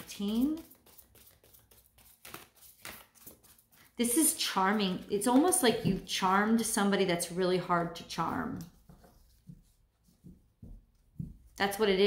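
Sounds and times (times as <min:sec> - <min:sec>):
cards tapping and rustling: 0:00.0 - 0:03.8.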